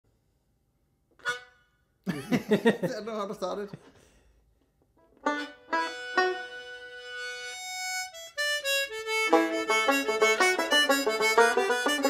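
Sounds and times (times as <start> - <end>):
short harmonica note: 1.2 - 1.8, 5.3 - 12.0.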